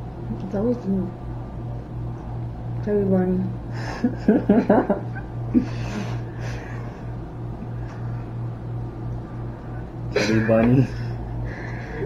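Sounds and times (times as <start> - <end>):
low electrical hum: 0.0 - 12.0
young people laughing: 3.8 - 6.8.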